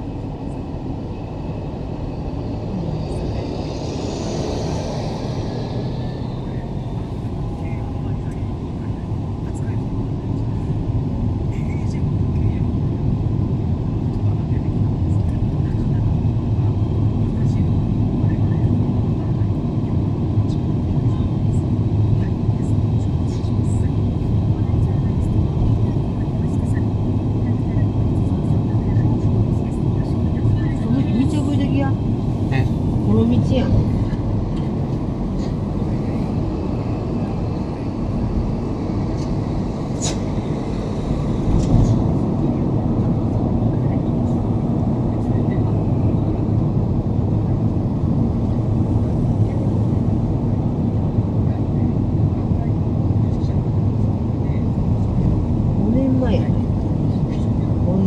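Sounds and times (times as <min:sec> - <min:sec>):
car road and engine noise: 0:00.0 - 0:58.0.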